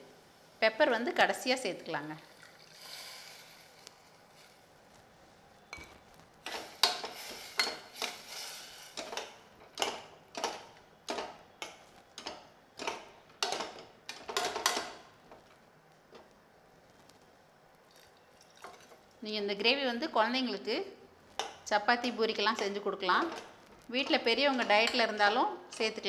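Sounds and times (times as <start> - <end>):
water trickling: 2.2 - 2.9
ladle stirring and scraping pot: 5.7 - 13.7.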